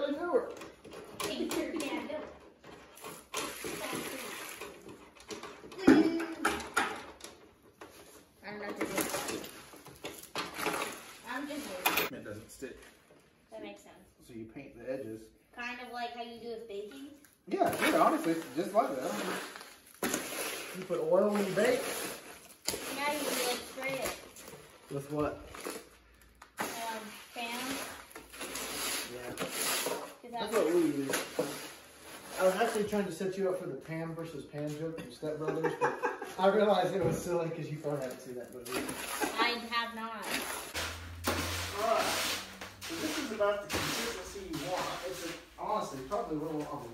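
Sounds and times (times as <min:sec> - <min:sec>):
hoe scraping wet concrete: 0:17.7 - 0:24.1, 0:26.6 - 0:33.0, 0:38.7 - 0:46.6
person talking: 0:41.7 - 0:46.9.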